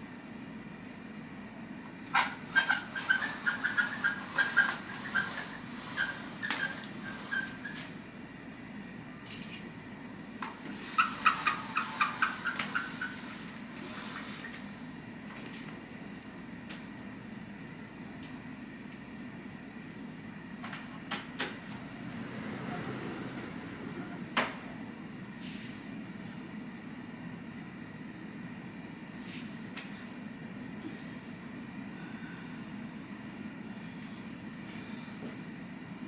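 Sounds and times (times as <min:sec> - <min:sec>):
low room hum: 0:00.0 - 0:36.0.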